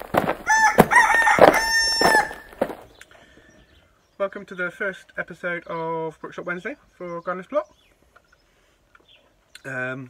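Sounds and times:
rooster crowing: 0.4s - 2.7s.

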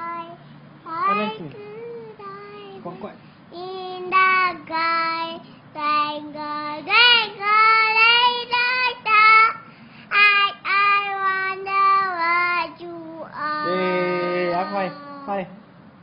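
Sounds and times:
child singing: 0.0s - 15.4s
lower voice singing: 10.2s - 15.4s.

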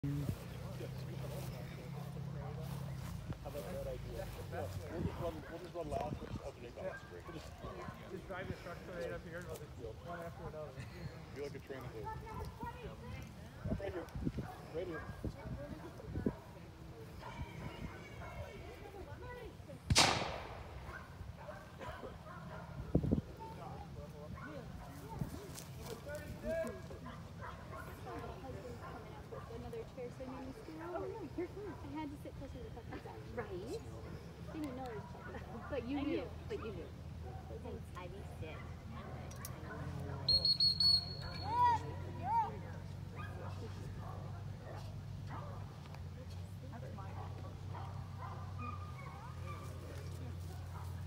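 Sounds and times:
gunshot with echo: 19.9s - 20.9s.

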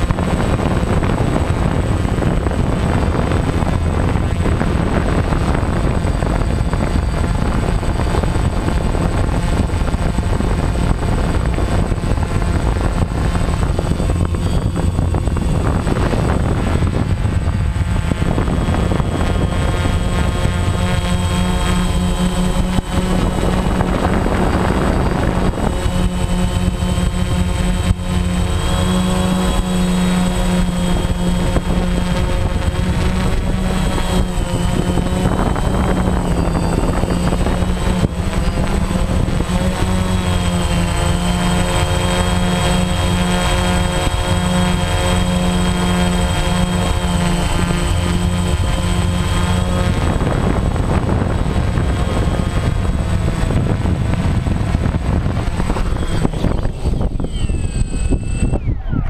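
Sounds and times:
quadcopter propellers droning: 0.0s - 59.0s.

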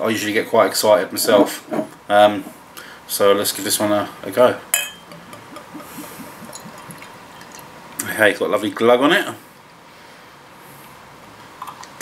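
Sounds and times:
beer glugging from a bottle: 5.0s - 7.7s.

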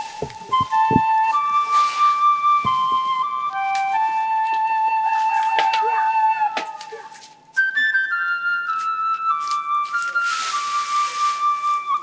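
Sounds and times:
flute-like film score melody: 0.0s - 12.0s.

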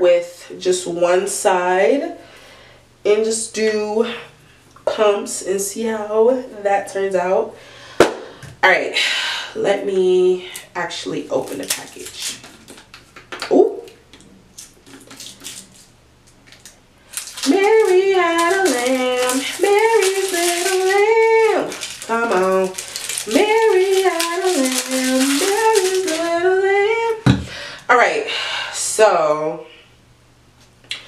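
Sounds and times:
woman singing wordless tune: 17.4s - 27.3s.

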